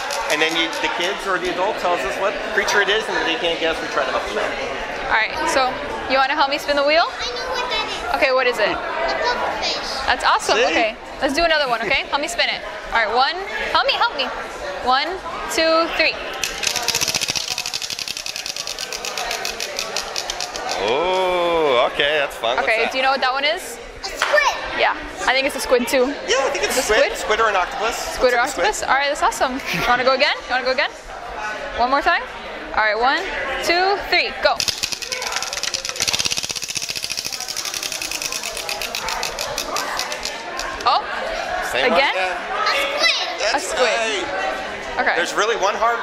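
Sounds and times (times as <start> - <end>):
prize wheel clicking against pegs: 16.4 - 20.8, 34.6 - 40.8.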